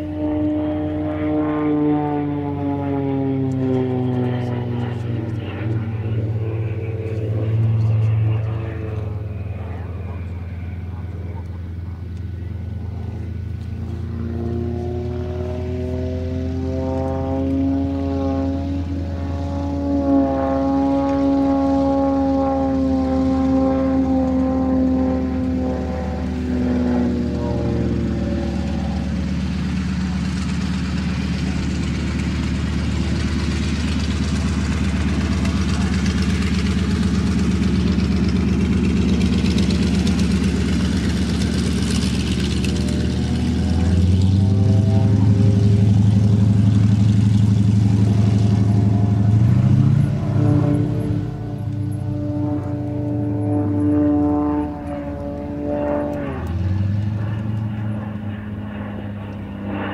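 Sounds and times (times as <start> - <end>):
propeller plane engine: 0.0 - 59.9.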